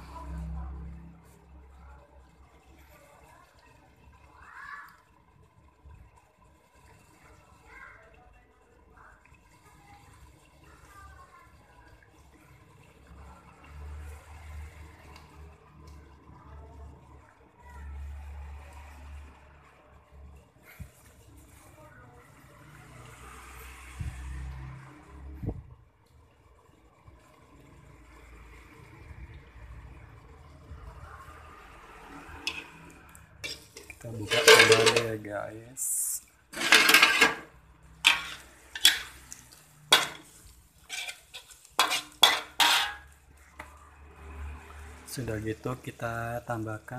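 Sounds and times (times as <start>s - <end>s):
sauce bubbling under a lid: 0.3s - 16.3s.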